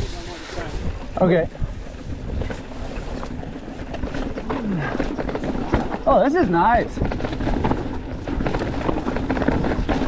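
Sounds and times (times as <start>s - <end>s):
wind on microphone: 0.0s - 5.8s
tyres rumbling on dirt trail: 0.0s - 10.0s
bike clicks and rattles: 1.6s - 10.0s.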